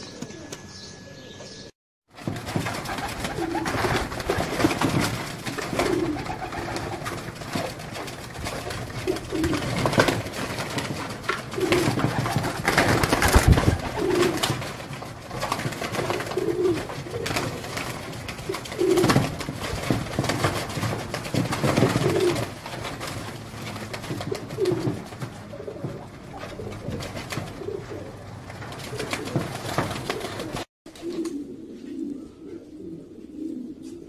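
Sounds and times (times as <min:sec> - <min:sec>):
wing flaps: 0:02.1 - 0:31.4
scuffling on perches: 0:02.2 - 0:32.1
pigeons cooing: 0:02.8 - 0:34.0.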